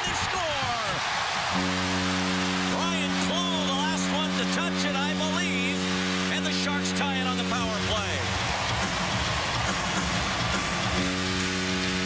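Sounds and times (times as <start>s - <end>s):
arena crowd cheering: 0.0s - 12.0s
goal horn blast: 1.4s - 8.3s, 10.6s - 12.0s.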